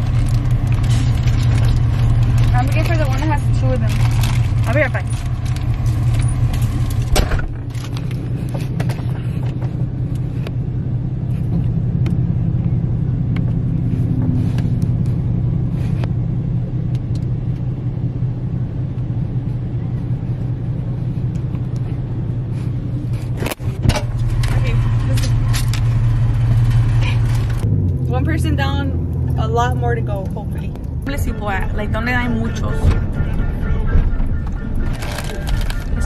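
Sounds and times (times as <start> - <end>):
car engine idling: 0.0 - 36.0.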